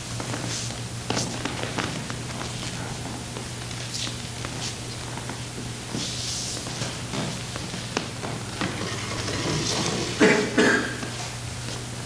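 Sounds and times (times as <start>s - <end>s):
footsteps on stage floor: 0.0s - 12.0s
low mains hum: 0.0s - 12.0s.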